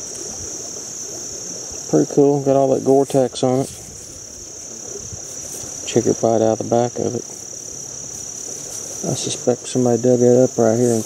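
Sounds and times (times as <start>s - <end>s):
faint low hiss: 0.0s - 11.0s
shrill insect chorus: 0.0s - 11.0s.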